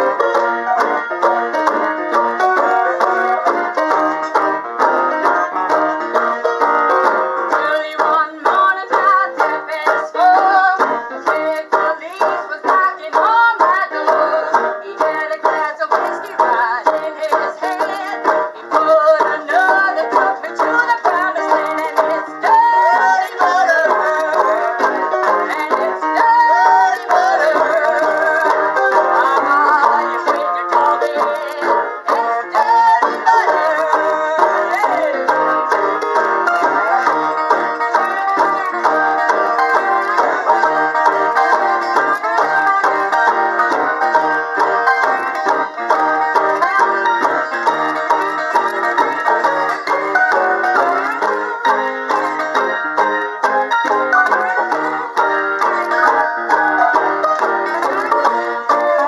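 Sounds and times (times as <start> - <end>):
banjo ukulele strummed: 0.0 - 59.0
woman singing: 7.5 - 35.5.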